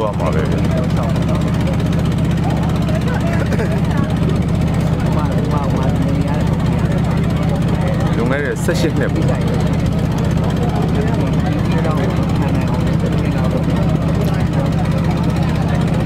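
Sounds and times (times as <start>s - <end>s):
engine running steadily: 0.0s - 16.0s
faint voices talking: 0.0s - 16.0s.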